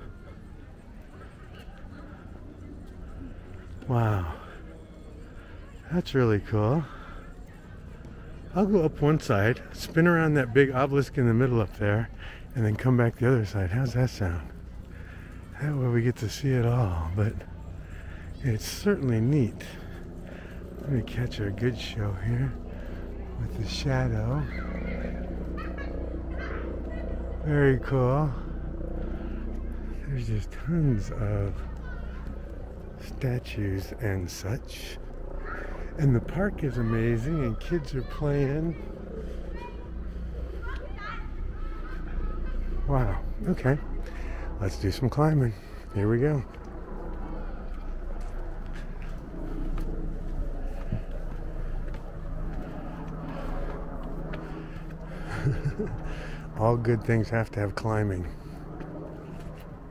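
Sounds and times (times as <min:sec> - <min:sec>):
distant chatter of voices: 0:00.0 - 0:59.9
steady low hum: 0:00.0 - 0:59.9
footsteps on stone: 0:48.2 - 0:55.0.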